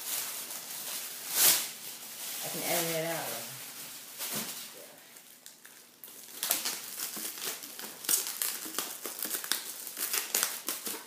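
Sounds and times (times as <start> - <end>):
plastic gloves crinkling: 0.0 - 11.0.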